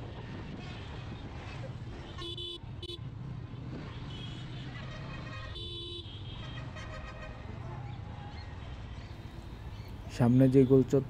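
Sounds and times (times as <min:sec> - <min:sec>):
vehicle horn toots: 0:02.2 - 0:03.0.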